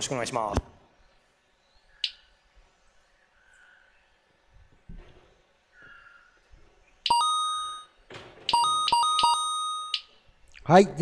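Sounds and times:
electronic two-note beeps: 8.5 - 10.1.

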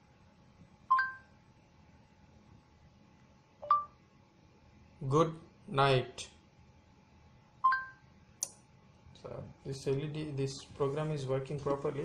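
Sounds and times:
two-note electronic beeps: 0.9 - 1.3, 3.6 - 4.0, 7.6 - 8.0.

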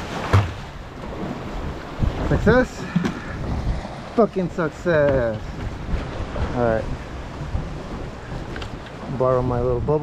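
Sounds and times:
waves washing against rocks: 0.0 - 10.0
wind on microphone: 0.0 - 10.0.

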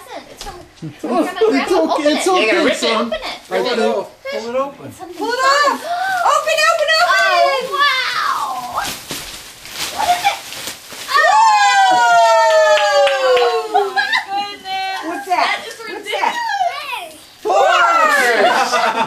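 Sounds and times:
plastic wrapping rustling: 2.0 - 19.0
excited voices: 5.2 - 9.0, 11.1 - 19.0.

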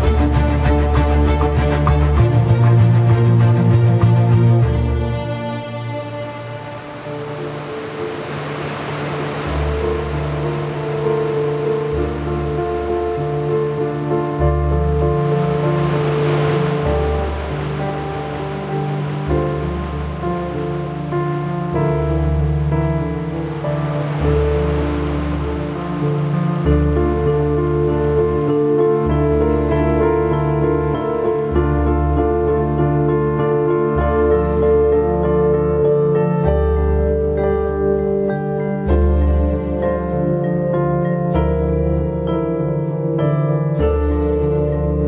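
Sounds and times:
slow sustained music: 0.0 - 45.0
hissing wash: 5.8 - 29.0.

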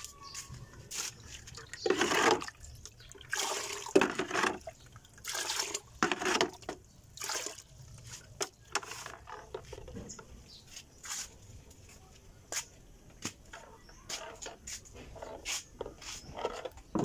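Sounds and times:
water sloshing and splashing: 0.5 - 10.5.

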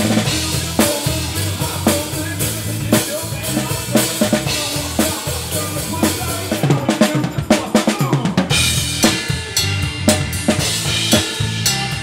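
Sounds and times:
low bass: 0.0 - 6.9, 8.5 - 12.0
live band playing: 0.0 - 12.0.

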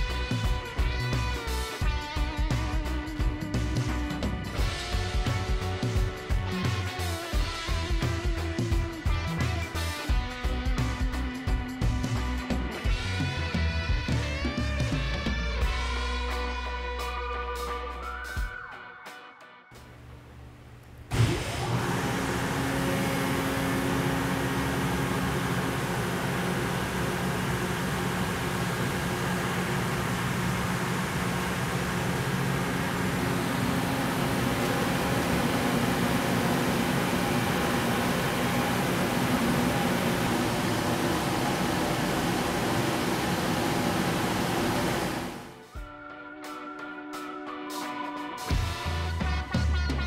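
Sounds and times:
vacuum pump running hum: 19.8 - 45.6
vacuum pump starting thump: 21.1 - 45.6.

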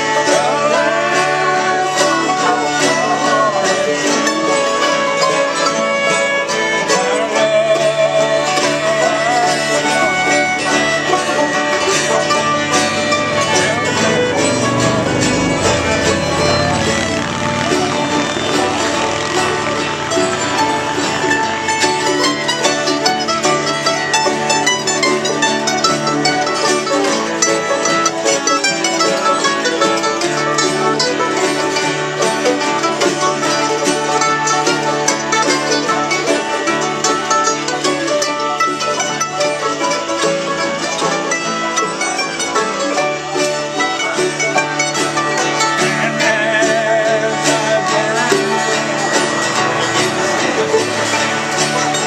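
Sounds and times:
acoustic guitars picking: 0.0 - 52.0
fiddle playing: 0.0 - 52.0
mandolins picking: 0.0 - 52.0.

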